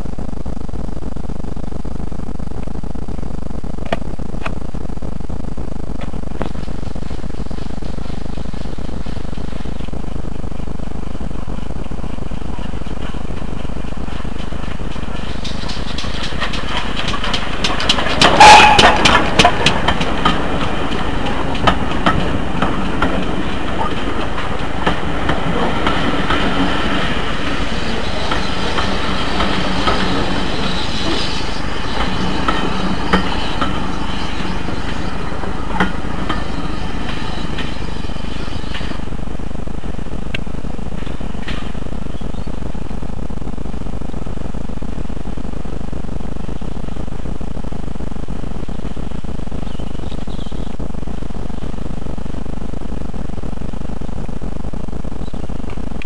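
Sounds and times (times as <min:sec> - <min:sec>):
wheels clicking over rail joints: 0:06.0 - 0:43.1
steam locomotive passing: 0:06.0 - 0:52.5.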